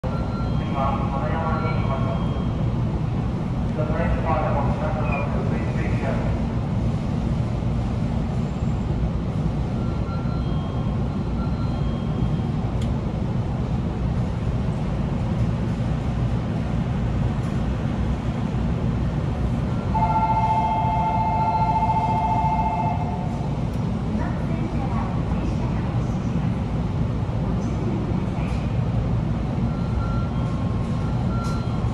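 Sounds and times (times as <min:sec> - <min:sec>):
electric train rumbling: 0:00.0 - 0:31.9
voice announcement: 0:00.6 - 0:02.4, 0:03.7 - 0:06.4
two-note electronic tone: 0:19.9 - 0:23.2.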